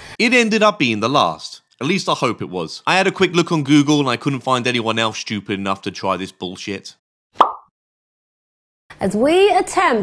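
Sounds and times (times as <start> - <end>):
plop-like pop: 7.4 - 7.7.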